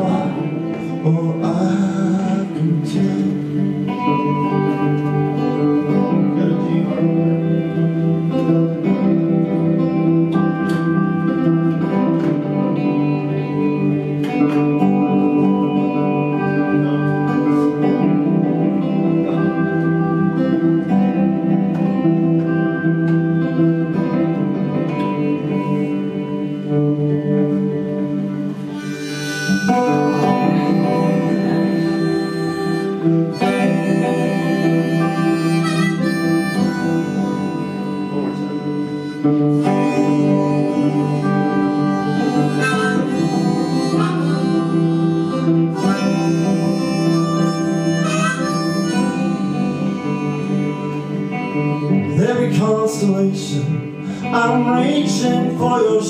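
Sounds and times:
harmonica solo: 0:00.0 - 0:56.0
strummed guitars: 0:00.0 - 0:56.0.

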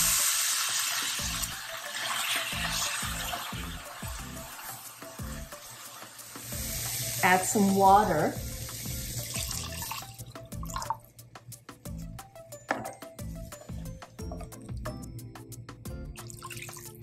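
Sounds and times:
water pouring into sauce in a pan: 0:00.0 - 0:07.3, 0:08.0 - 0:11.0
background music: 0:00.0 - 0:17.0.

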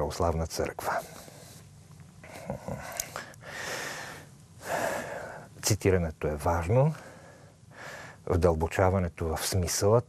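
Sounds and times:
man breathing in: 0:02.8 - 0:05.5, 0:07.0 - 0:08.2.

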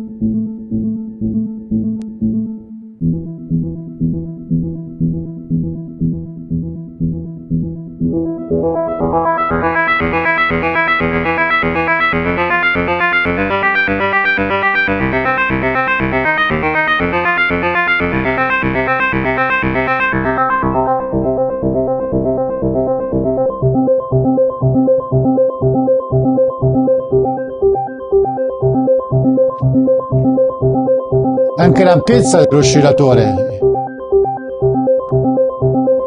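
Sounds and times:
synthesizer playing repeating notes: 0:03.5 - 0:36.0.

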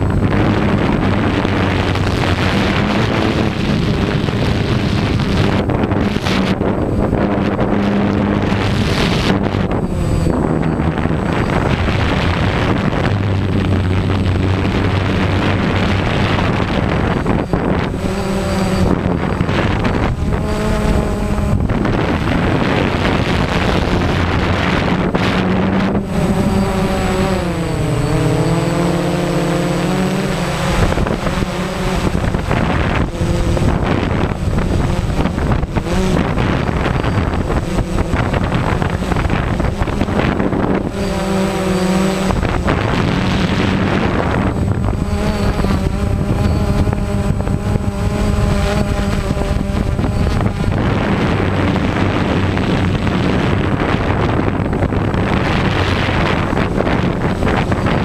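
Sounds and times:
drone propellers humming: 0:00.0 - 0:58.0
wind buffeting microphone: 0:00.0 - 0:58.0.

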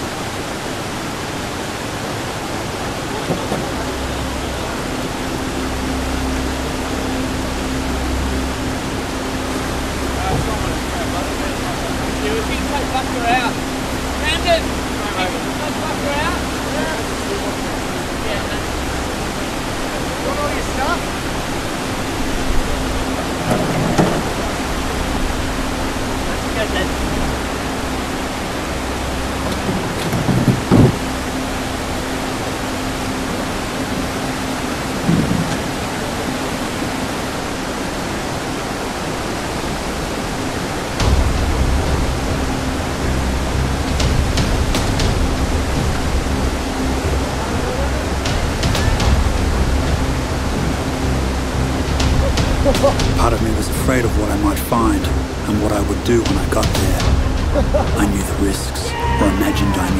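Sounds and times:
deep water rumble: 0:00.0 - 0:59.9
rushing river rapids roar: 0:00.0 - 0:59.9.

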